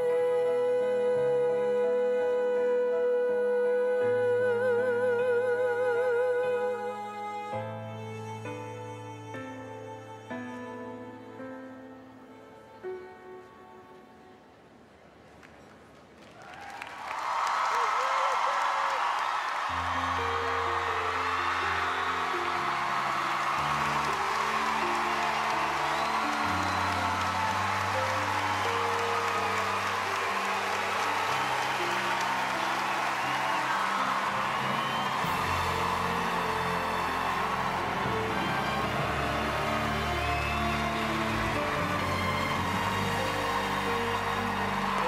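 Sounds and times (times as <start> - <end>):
audience applauding and cheering: 0.0 - 2.7, 15.1 - 45.0
slow sustained chords music: 19.8 - 45.0.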